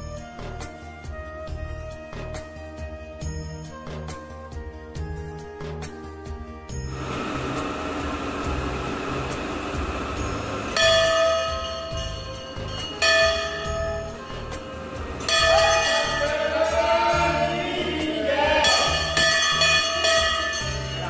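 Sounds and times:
devotional music with low beat: 0.0 - 6.9
large brass bell ringing: 6.9 - 17.6, 18.5 - 21.0.

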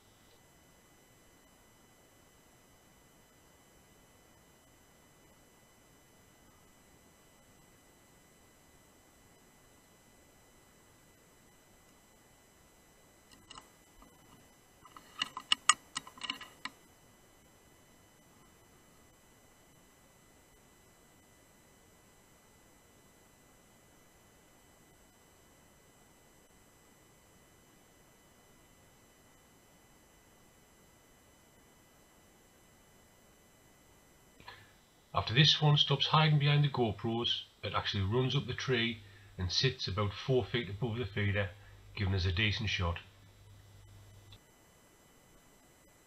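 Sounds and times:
faint electronic whine: 0.0 - 46.0
sharp clicks: 13.3 - 16.8.

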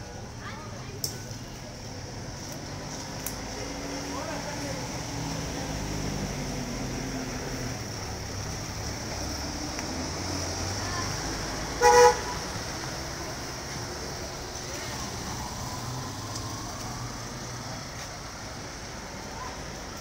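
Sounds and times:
vehicle horn toot: 11.8 - 12.4.

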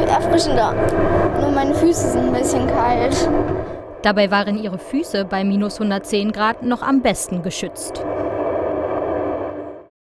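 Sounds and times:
low hum: 0.0 - 9.9.

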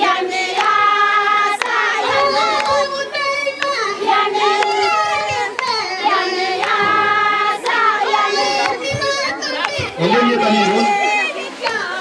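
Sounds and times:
high voices singing together: 0.0 - 12.0
sharp claps: 0.1 - 10.7.

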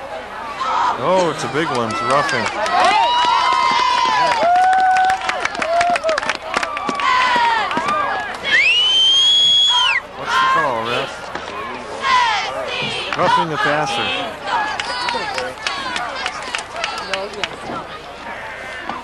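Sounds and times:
spectators shouting: 0.3 - 19.0
loud high whistle: 8.5 - 10.0.

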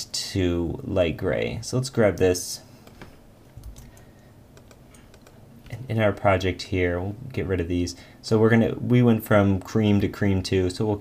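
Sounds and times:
man speaking: 0.0 - 2.7, 5.7 - 11.0
computer keyboard keystrokes: 2.8 - 5.4.

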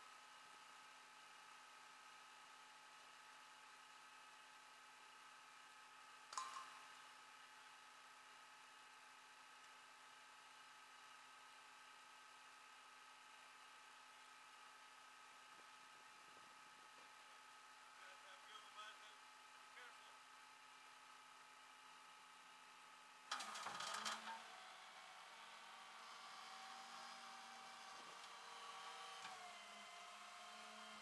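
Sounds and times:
faint electrical hum: 0.1 - 31.0.

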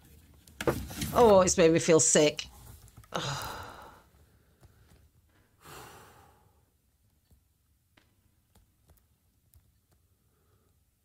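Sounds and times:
woman sighing: 3.1 - 4.1.

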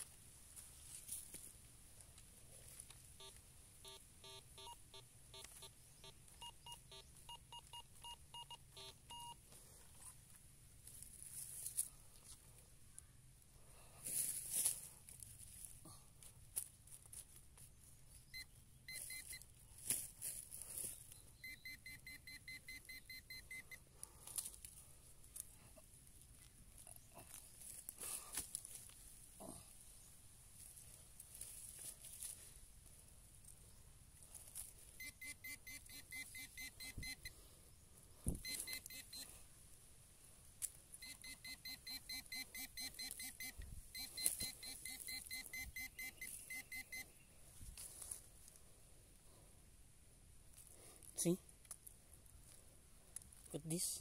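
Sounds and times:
digging and handling soil: 0.0 - 22.2, 22.9 - 54.0
metal detector pulsing beeps: 3.2 - 9.4, 18.3 - 19.5, 21.1 - 23.8, 34.9 - 37.4, 38.3 - 39.4, 41.0 - 47.2.

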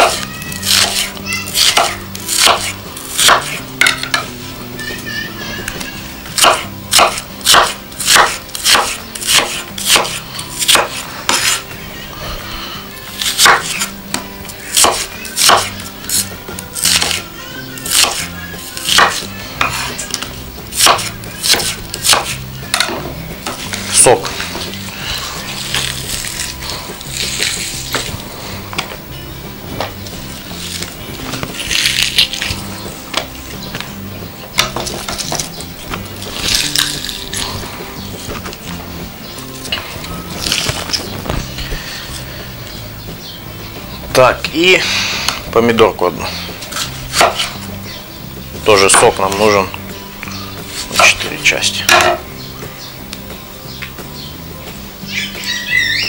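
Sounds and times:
knife chopping on wooden board: 0.0 - 4.2, 6.4 - 11.6, 13.2 - 16.2, 17.9 - 19.9, 20.7 - 23.7, 46.7 - 47.6
rustling and handling food: 0.0 - 44.8.

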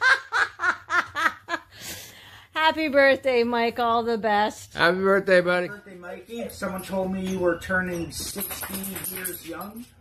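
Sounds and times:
woman laughing hard: 0.0 - 1.7
breath in: 1.7 - 2.5.

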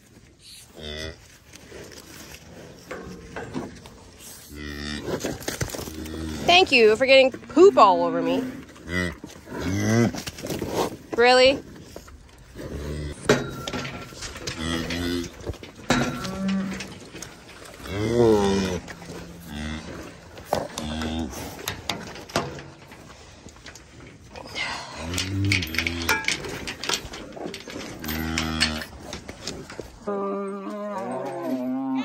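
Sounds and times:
cattle mooing: 12.7 - 21.8, 28.0 - 28.9.

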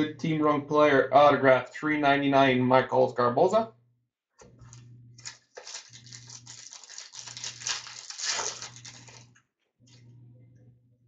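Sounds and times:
trading cards rustling: 5.2 - 9.3.

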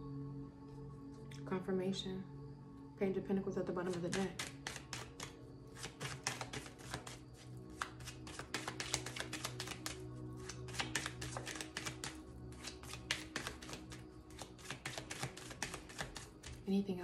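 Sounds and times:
background music: 0.0 - 17.0
cards being shuffled: 3.8 - 16.6.

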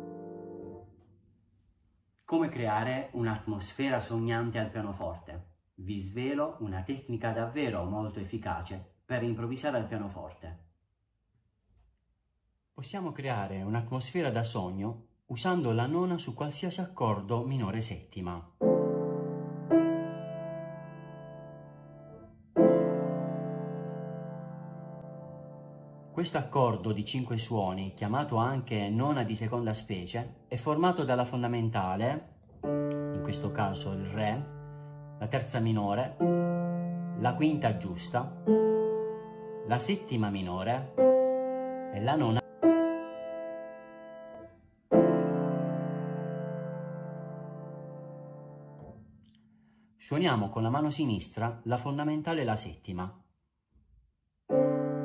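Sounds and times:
piano chord ringing: 0.0 - 1.1, 18.6 - 27.2, 32.6 - 49.2, 54.5 - 55.0.

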